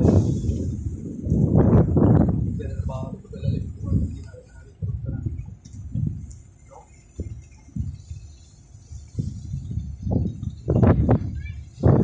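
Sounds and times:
wind gusts buffeting microphone: 0:00.0 - 0:12.0.

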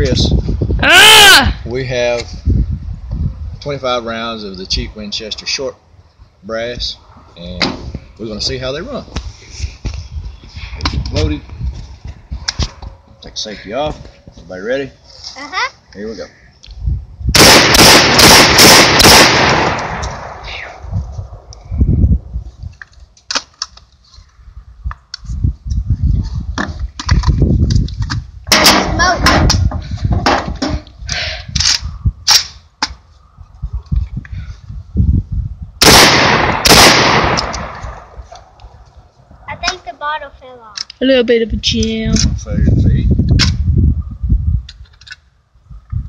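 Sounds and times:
shotgun shots echoing: 0:17.4 - 0:20.5, 0:35.8 - 0:38.0.

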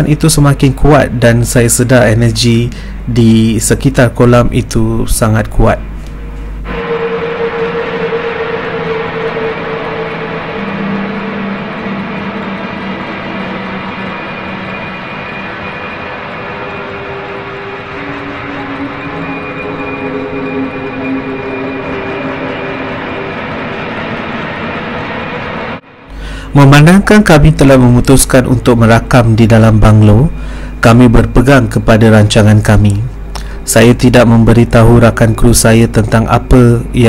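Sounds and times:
eerie ambient drone music: 0:00.0 - 0:37.0.

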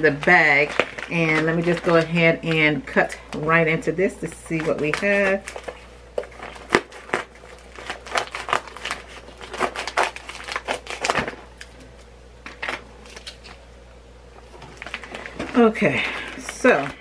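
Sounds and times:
package crinkling and snapping: 0:00.0 - 0:03.5, 0:04.2 - 0:13.7, 0:14.4 - 0:17.0.

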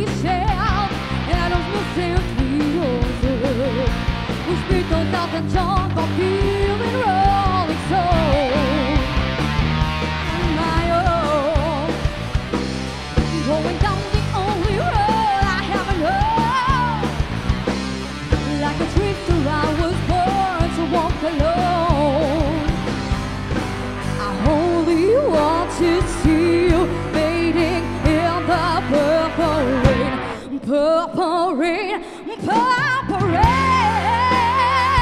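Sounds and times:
rock song with woman singing: 0:00.0 - 0:35.0.

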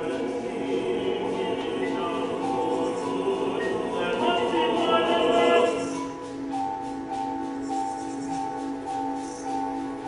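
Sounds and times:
male chorus singing: 0:00.0 - 0:06.3
orchestra playing: 0:00.0 - 0:10.0.

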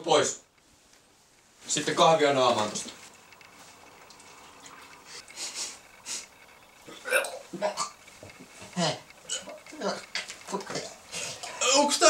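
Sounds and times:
loud mouth noises: 0:06.9 - 0:08.0.

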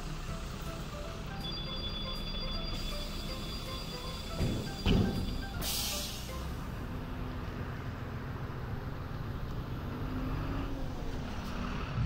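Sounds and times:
bus diesel engine idling: 0:00.0 - 0:10.0.

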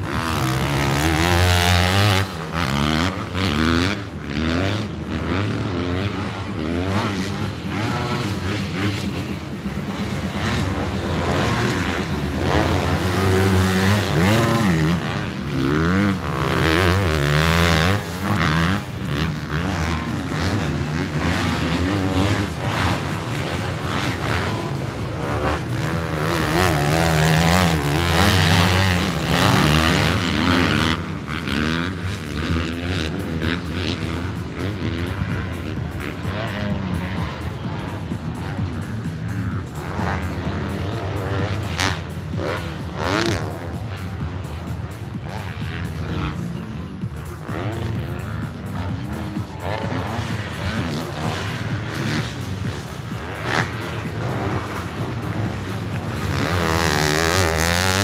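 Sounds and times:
dirt bike engines revving: 0:00.0 - 0:58.0.

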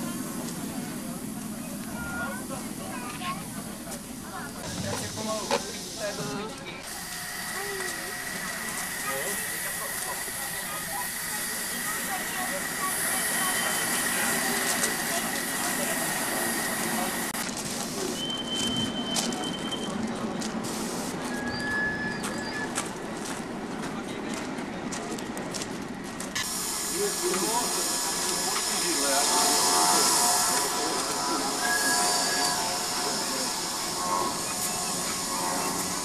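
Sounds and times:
steam hissing: 0:00.0 - 0:19.8, 0:20.5 - 0:22.7, 0:26.4 - 0:36.0
railway wagons rolling: 0:00.0 - 0:36.0
voices chattering: 0:00.0 - 0:36.0
high-pitched wheel squeal: 0:21.3 - 0:22.8, 0:29.4 - 0:36.0.

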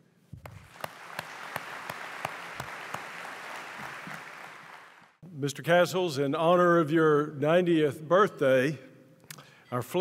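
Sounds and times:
audience applauding: 0:00.4 - 0:05.2.

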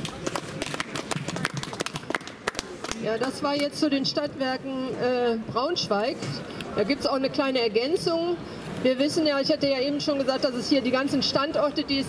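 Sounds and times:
sparse hand claps: 0:00.0 - 0:03.0.

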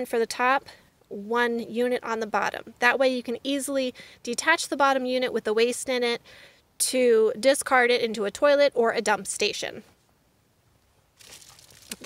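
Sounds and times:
bubble wrap crinkling: 0:11.2 - 0:12.0.

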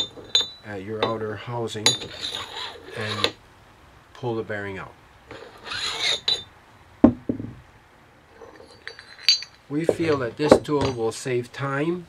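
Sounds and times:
light metal clinks: 0:00.0 - 0:01.2, 0:08.3 - 0:11.2
metallic clank with ring: 0:00.0 - 0:01.2, 0:06.0 - 0:06.5, 0:08.5 - 0:11.0
metal scraping: 0:01.8 - 0:03.4, 0:05.3 - 0:06.5, 0:08.3 - 0:11.1.

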